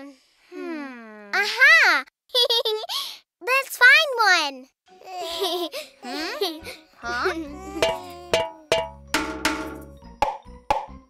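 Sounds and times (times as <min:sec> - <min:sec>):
spoon tapping pots: 0:07.8 - 0:10.9.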